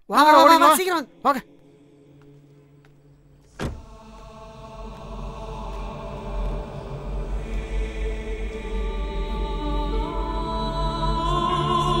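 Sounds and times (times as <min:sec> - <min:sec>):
low droning film score: 0:00.8 - 0:12.0.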